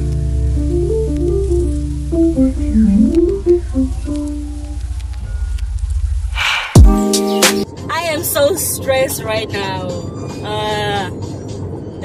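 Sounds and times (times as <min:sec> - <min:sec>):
music: 0:00.0 - 0:05.7, 0:06.4 - 0:12.0
car road noise: 0:00.0 - 0:06.8, 0:07.6 - 0:12.0.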